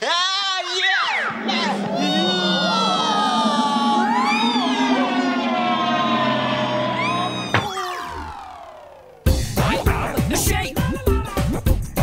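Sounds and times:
held synth notes: 1.1s - 9.8s.

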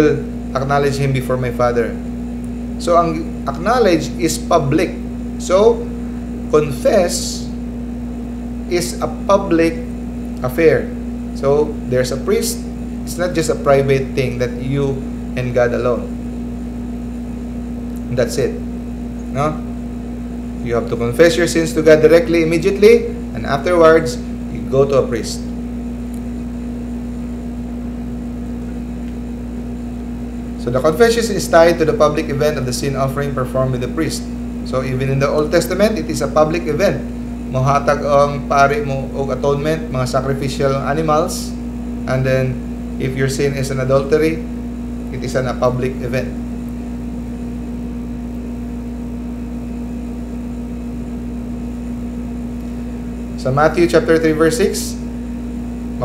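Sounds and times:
steady background hum: 0.0s - 56.0s.

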